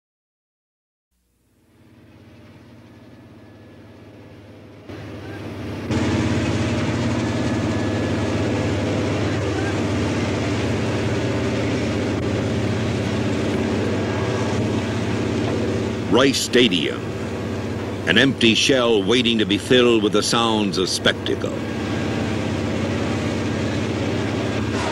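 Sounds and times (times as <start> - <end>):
helicopter rotor chop: 1.6 - 24.9.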